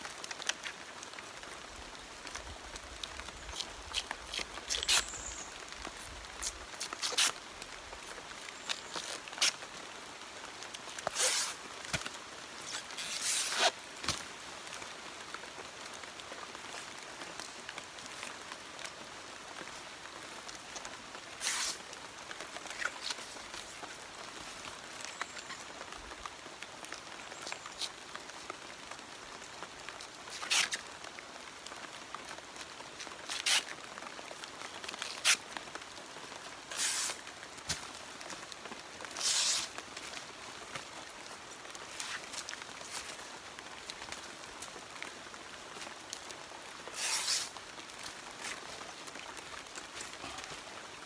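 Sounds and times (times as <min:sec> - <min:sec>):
faint outdoor hiss: 0:00.0 - 0:51.0
fibre strips ripping: 0:03.5 - 0:05.1, 0:06.4 - 0:07.4, 0:11.0 - 0:12.0, 0:12.7 - 0:14.2, 0:21.4 - 0:21.8, 0:30.3 - 0:30.8, 0:33.2 - 0:33.7, 0:36.7 - 0:37.8, 0:39.2 - 0:39.8, 0:46.9 - 0:47.6.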